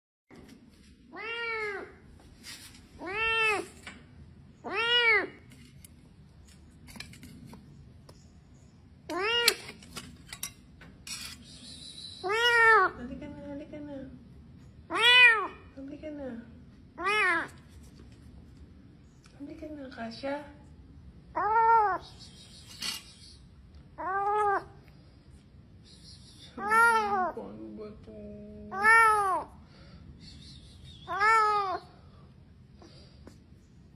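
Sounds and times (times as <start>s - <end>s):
kitten meowing: 21.4s - 22.1s, 24.0s - 24.7s, 26.6s - 27.4s, 31.1s - 31.8s.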